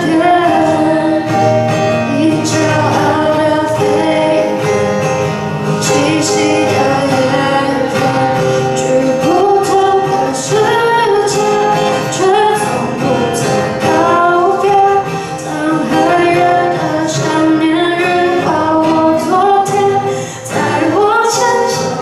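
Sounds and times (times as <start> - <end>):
acoustic guitar: 0.0 - 22.0
woman singing pop ballad: 0.0 - 22.0.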